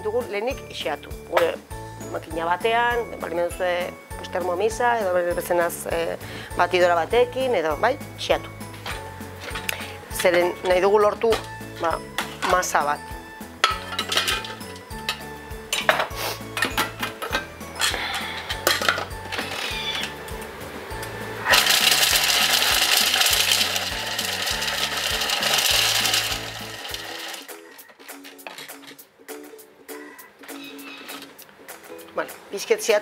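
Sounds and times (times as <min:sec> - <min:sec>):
chestnuts clattering into steel bowl: 0:13.6 - 0:20.1, 0:21.5 - 0:29.0
food processor blade chopping: 0:21.5 - 0:27.5.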